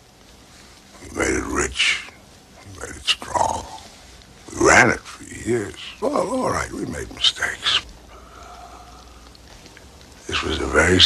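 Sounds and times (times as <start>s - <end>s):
old man's gravelly voice: 1.0s - 3.9s, 4.5s - 7.8s, 10.2s - 11.0s.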